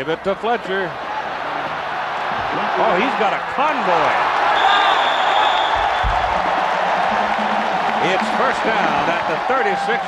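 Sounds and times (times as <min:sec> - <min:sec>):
stadium crowd cheering: 0:00.0 - 0:10.0
referee's whistle blowing: 0:04.6 - 0:06.0.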